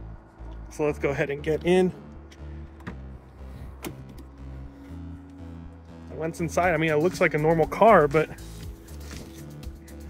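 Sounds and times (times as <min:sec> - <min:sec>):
background music: 0:00.0 - 0:10.0
car door unlatching and opening: 0:03.7 - 0:04.4.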